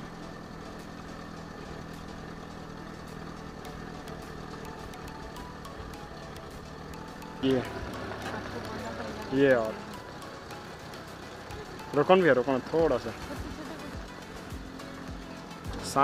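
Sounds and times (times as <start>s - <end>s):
bus engine running: 0.0s - 16.0s.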